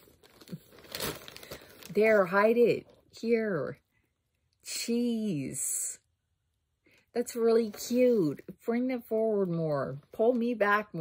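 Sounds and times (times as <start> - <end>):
packing paper crinkling: 0.0 - 2.4.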